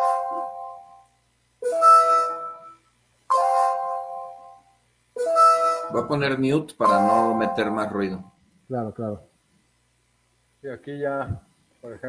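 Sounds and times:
electronic alert chime: 0:01.6 - 0:04.5, 0:06.8 - 0:08.3.

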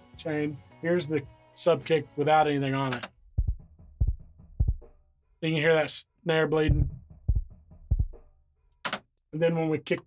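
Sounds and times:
deep bass drum thumps: 0:03.3 - 0:05.0, 0:06.6 - 0:08.3
faint snare drum: 0:06.6 - 0:08.2.

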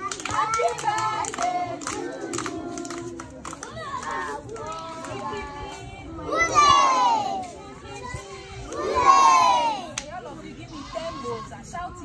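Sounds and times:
children shouting together: 0:08.7 - 0:09.9.

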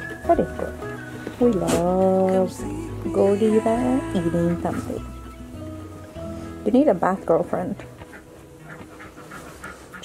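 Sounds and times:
goat breath and mouth sounds: 0:08.0 - 0:10.0.

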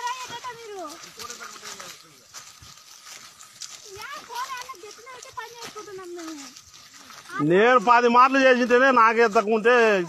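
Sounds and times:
scattered clicks and rustles: 0:00.0 - 0:07.4.

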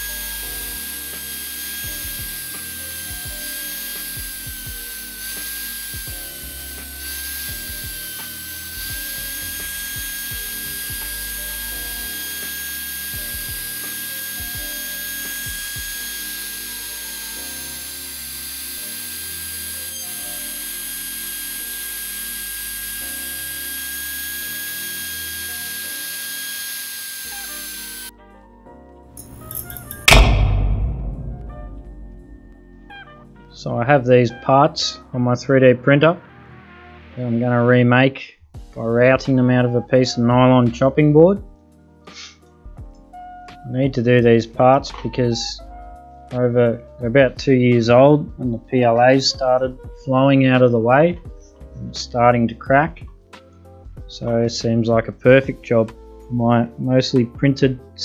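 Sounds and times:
router spindle whine: 0:00.0 - 0:28.1
low stepped tones: 0:29.2 - 0:32.9
loud hit: 0:29.3 - 0:32.9.

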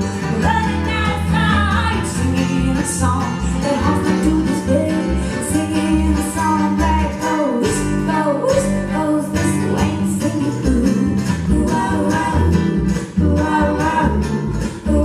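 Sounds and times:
acoustic guitar: 0:00.0 - 0:15.0
mandolin: 0:00.0 - 0:15.0
upright bass: 0:00.0 - 0:15.0
woman singing: 0:00.0 - 0:15.0.

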